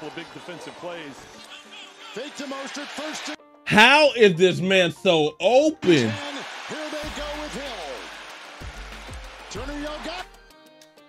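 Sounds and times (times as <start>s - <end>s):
background music: 0.0s - 11.0s
speech: 2.0s - 8.0s.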